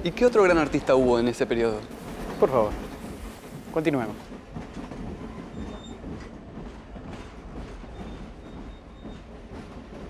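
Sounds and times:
train rumbling: 0:00.0 - 0:10.0.

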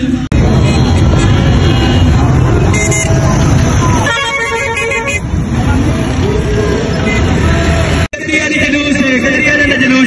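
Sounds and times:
vehicle horn: 0:00.4 - 0:05.5, 0:07.0 - 0:07.7.

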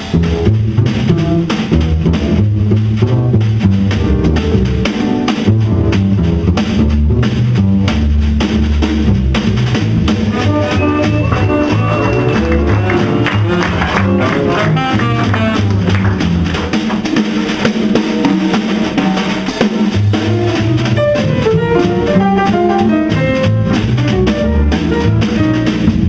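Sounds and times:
drum kit with ride cymbal: 0:00.0 - 0:26.0
walking double bass: 0:00.0 - 0:26.0
saxophone melody: 0:10.3 - 0:16.0.

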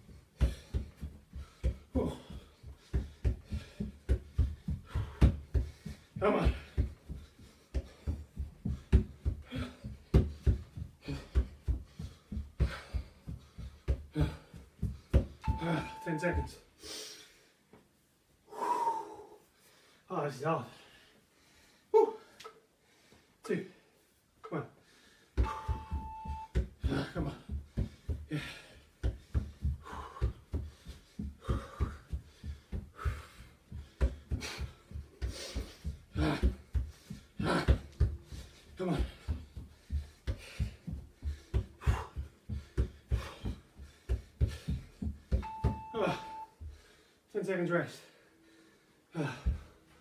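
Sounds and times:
heavy breathing: 0:00.0 - 0:16.0, 0:18.4 - 0:24.1, 0:24.7 - 0:25.9, 0:26.8 - 0:50.0
feet thudding on step platform: 0:00.0 - 0:16.5, 0:25.3 - 0:46.9
steady beep: 0:15.4 - 0:16.6, 0:25.4 - 0:26.5, 0:45.4 - 0:46.6.

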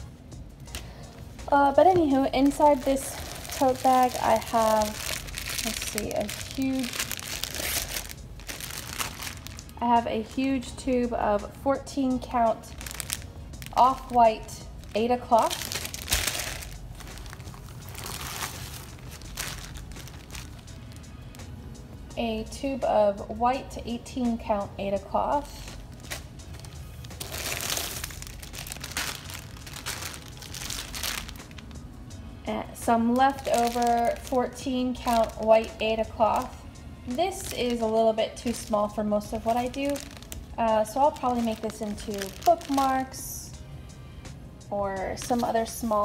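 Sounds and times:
plastic rustling and crinkling: 0:00.7 - 0:10.0, 0:12.4 - 0:21.4, 0:25.6 - 0:31.8, 0:33.1 - 0:43.1
woman's voice: 0:01.4 - 0:05.0, 0:05.6 - 0:07.1, 0:09.7 - 0:12.8, 0:13.7 - 0:15.6, 0:22.1 - 0:25.8, 0:32.4 - 0:43.6, 0:44.7 - 0:46.0.

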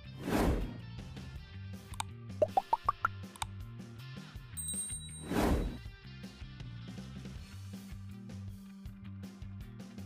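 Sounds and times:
background music: 0:00.0 - 0:10.0
cartoon plops rising in pitch: 0:02.4 - 0:03.2.

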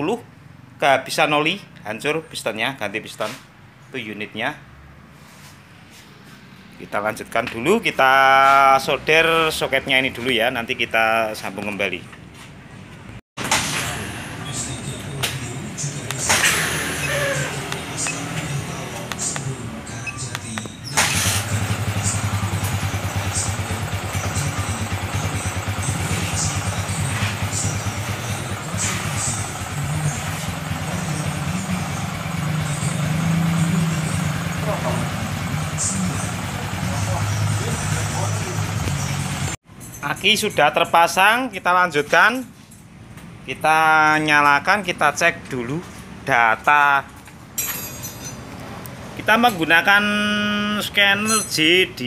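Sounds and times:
engine idling: 0:21.0 - 0:39.6.

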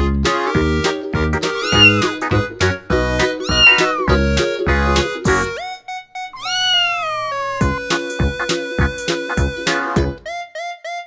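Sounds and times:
cat meowing: 0:01.6 - 0:02.2, 0:03.4 - 0:04.2, 0:06.4 - 0:07.8.

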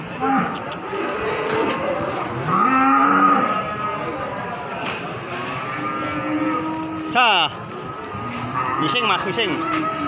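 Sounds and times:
livestock market din with voices: 0:00.0 - 0:10.0.

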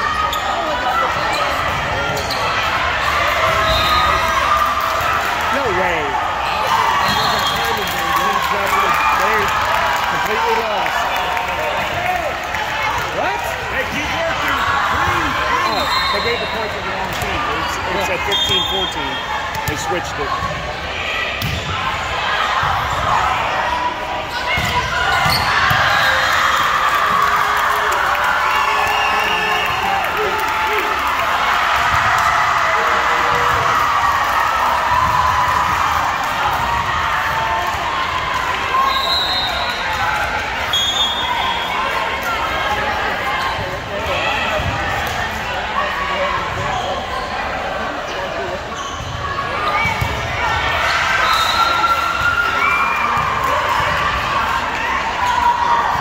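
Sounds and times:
volleyballs hit and bouncing: 0:21.3 - 0:22.0.

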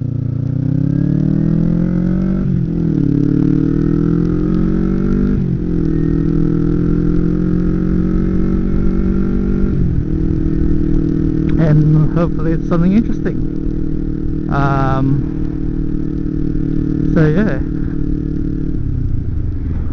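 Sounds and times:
motorcycle engine pulling away: 0:00.0 - 0:19.9.

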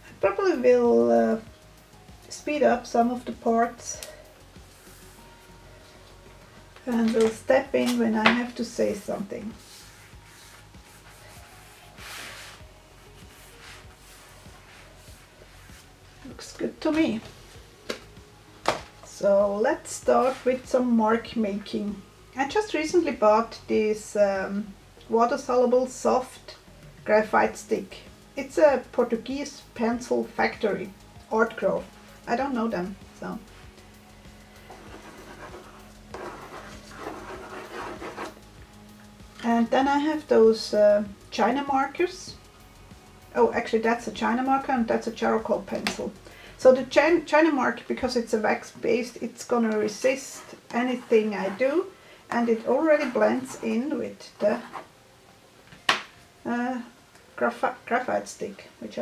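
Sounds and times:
faint background music: 0:00.0 - 0:59.0
hands rubbing masking tape: 0:09.6 - 0:15.8, 0:34.7 - 0:38.5
faint steady hum: 0:12.6 - 0:59.0
graphite stick scribbling on paper: 0:34.7 - 0:38.4.

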